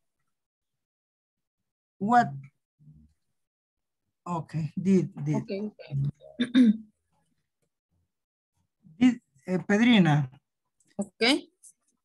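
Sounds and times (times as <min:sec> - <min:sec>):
person clearing throat: 0:06.4 - 0:06.8.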